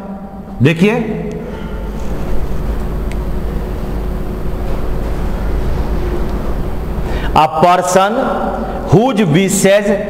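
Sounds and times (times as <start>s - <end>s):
faint hum: 0.0s - 10.0s
low rumbling noise: 0.0s - 10.0s.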